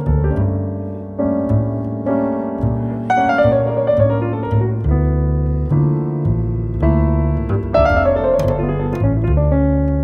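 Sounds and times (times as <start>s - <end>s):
double bass: 0.0s - 10.0s
piano: 0.0s - 10.0s.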